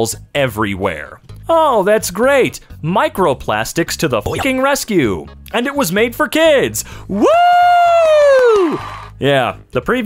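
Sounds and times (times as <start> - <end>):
person whooping: 7.1 - 9.1.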